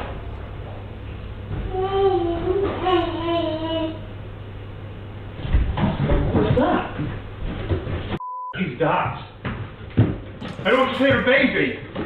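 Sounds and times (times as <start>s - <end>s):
censor bleep: 8.2s - 8.6s.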